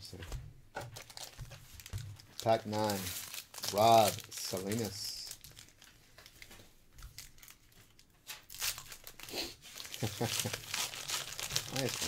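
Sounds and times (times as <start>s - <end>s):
wrapper crinkling and tearing: 1.0s - 12.0s.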